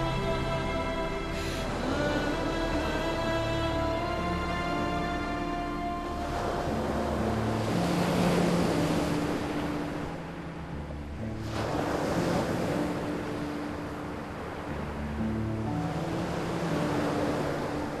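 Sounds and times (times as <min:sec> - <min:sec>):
sea waves washing on beach: 0:00.0 - 0:18.0
soft music of held notes: 0:00.0 - 0:18.0.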